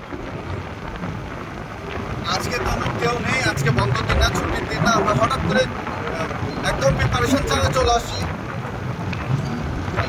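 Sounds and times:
car road and wind noise: 0.0 - 10.0.

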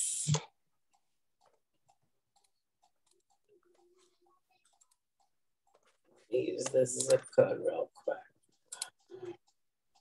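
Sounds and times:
person speaking: 6.0 - 9.6
soft computer clicks: 8.5 - 10.0.

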